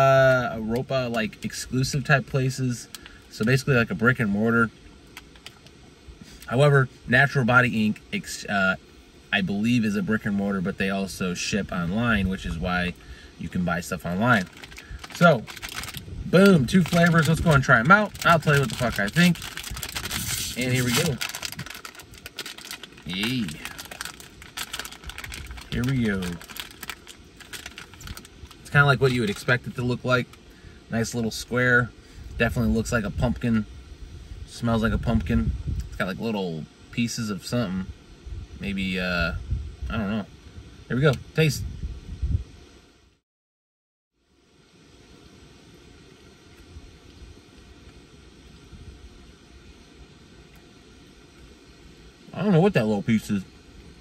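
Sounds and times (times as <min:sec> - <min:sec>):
car cabin rumble and hiss: 0:00.0 - 0:41.6, 0:44.3 - 0:54.0
plastic wrapper crinkling: 0:14.3 - 0:29.8.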